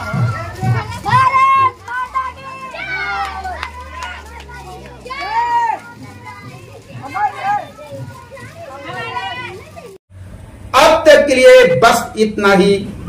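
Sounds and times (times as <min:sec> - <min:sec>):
children shouting: 0:00.0 - 0:10.0
man speaking: 0:10.7 - 0:13.0.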